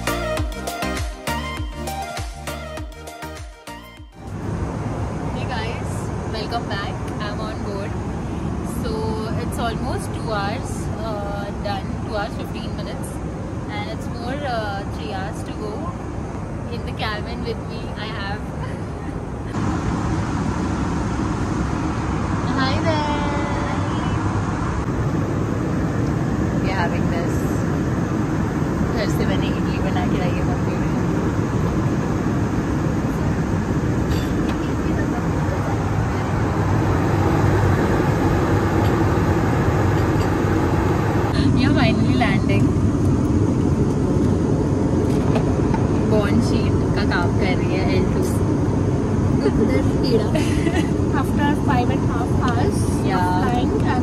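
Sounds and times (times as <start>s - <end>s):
airliner cabin noise: 4.2s - 54.0s.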